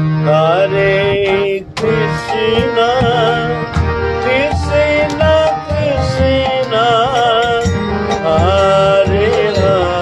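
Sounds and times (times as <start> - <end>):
harmonium drone: 0.0 - 10.0
person singing: 0.2 - 10.0.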